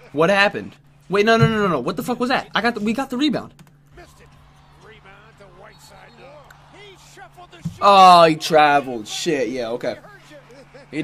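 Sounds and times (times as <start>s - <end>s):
commentator talking: 0.0s - 11.0s.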